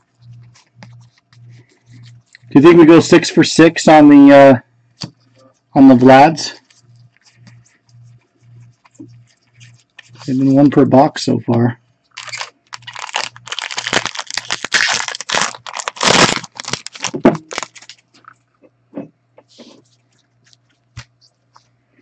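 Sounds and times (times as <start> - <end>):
plastic wrapper tearing and crinkling: 12.1 - 18.3.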